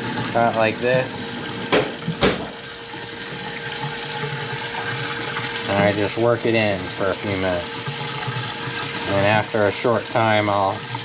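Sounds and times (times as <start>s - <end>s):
tap water running into metal sink: 0.0s - 11.0s
sharp knock: 1.7s - 2.5s.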